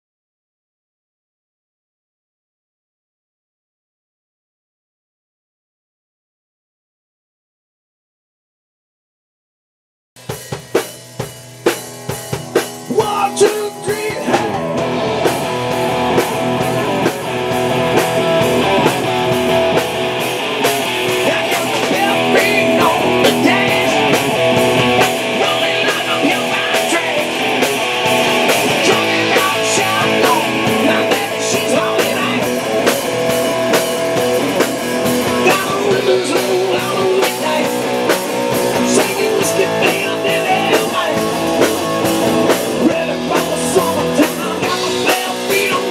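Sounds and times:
drum kit: 0:10.2 - 0:45.9
electric guitar: 0:10.2 - 0:45.9.

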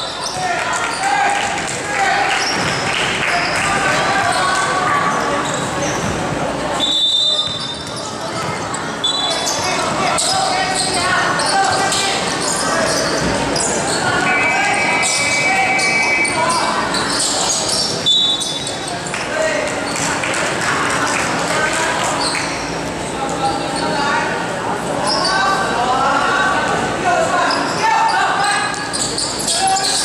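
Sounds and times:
shoe squeaks: 0:00.0 - 0:01.2, 0:02.3 - 0:06.2, 0:06.8 - 0:19.2, 0:22.1 - 0:24.2, 0:25.0 - 0:25.6, 0:27.3 - 0:30.0
people calling out: 0:06.8 - 0:18.7.

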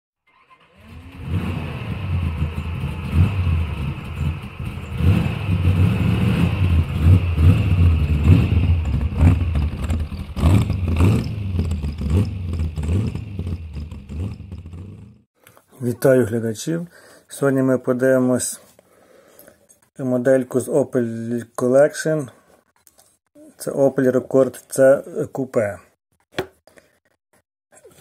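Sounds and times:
car engine starting and revving: 0:00.3 - 0:15.3.

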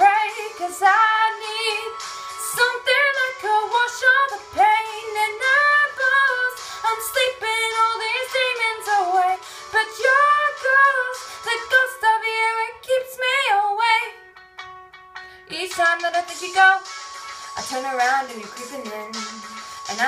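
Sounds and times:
woman singing wordless run: 0:15.5 - 0:16.9, 0:17.6 - 0:20.0.

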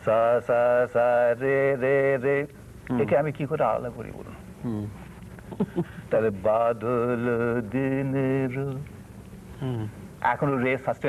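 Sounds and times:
man singing held notes unaccompanied: 0:00.0 - 0:03.1, 0:06.1 - 0:09.0.

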